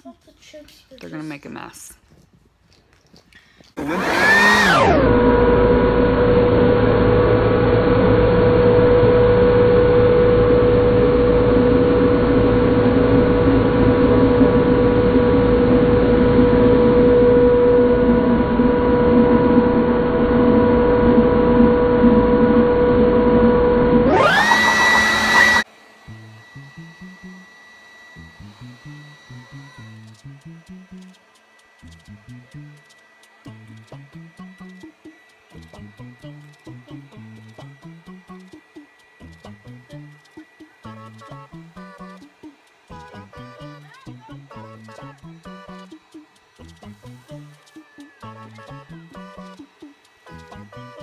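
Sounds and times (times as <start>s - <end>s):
leaf blower high whine: 3.6s - 51.0s.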